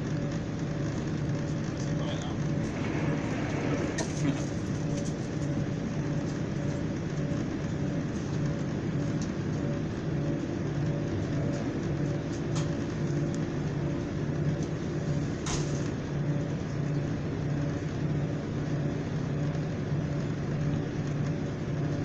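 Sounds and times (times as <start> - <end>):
diesel engine drone: 0.0 - 22.0
train wheels rumbling on rails: 0.8 - 13.8.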